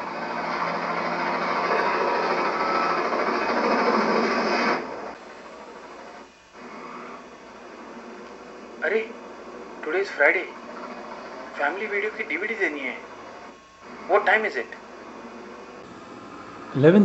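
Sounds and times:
film soundtrack from television: 0:00.0 - 0:17.0
steady background noise: 0:00.0 - 0:17.0.

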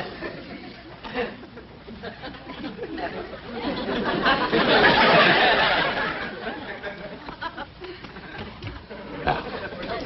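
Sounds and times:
laugh track crowd laughing: 0:00.0 - 0:10.0.

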